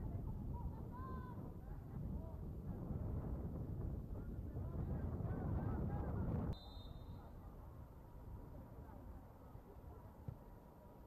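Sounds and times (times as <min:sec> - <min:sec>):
wind rumbling on microphone: 0:00.0 - 0:06.6.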